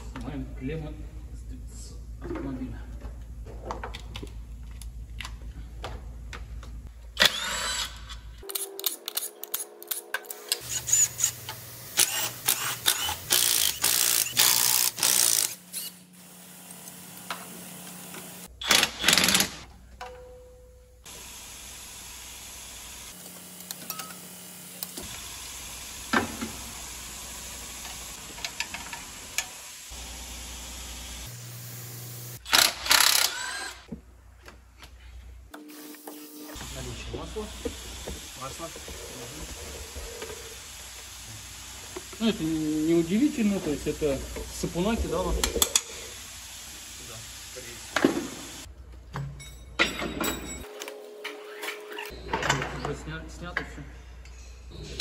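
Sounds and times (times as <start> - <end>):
impact driver running: 12.0 - 15.9, 32.4 - 33.9
tools clinking and knocking: 48.9 - 50.8.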